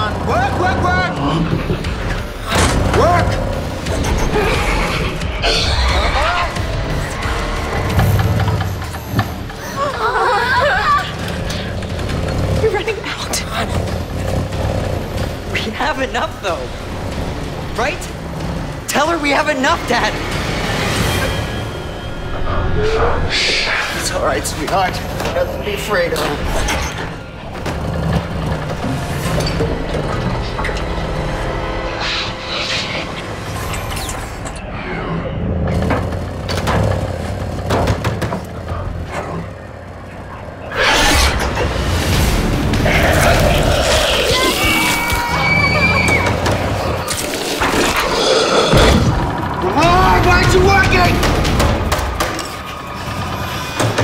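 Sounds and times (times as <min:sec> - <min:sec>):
dark horror film music: 0:00.0 - 0:54.0
low rumbling drone: 0:19.7 - 0:54.0.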